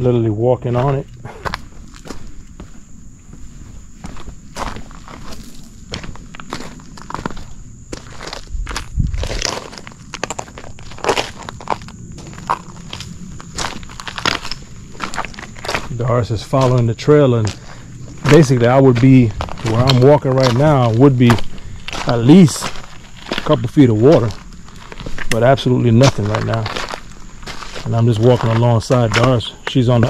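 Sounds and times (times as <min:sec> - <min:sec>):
footsteps on gravel: 0:00.6 - 0:30.0.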